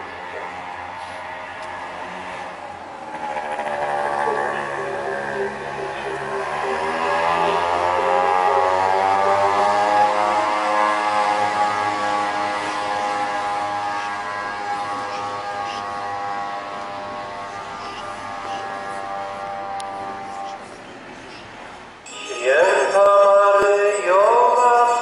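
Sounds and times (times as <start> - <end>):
vehicle engine speeding up: 0.0 - 20.7.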